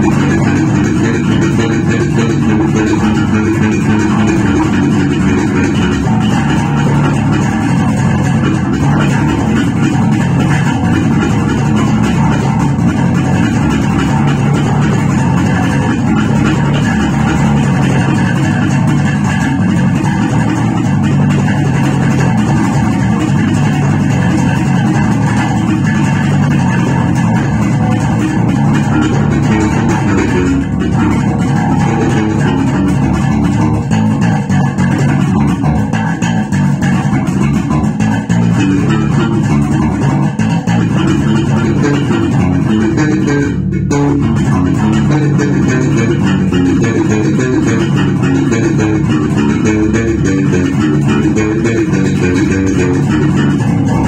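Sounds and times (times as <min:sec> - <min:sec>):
electric bass guitar plucked: 0:00.0 - 0:54.0.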